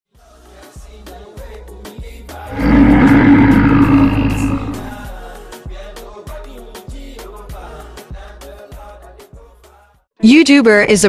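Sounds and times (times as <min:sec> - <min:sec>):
lion roaring: 0:02.5 - 0:05.0.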